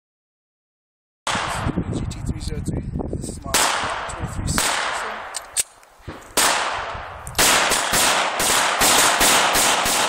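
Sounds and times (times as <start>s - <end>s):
wind noise on microphone: 1.3s - 10.0s.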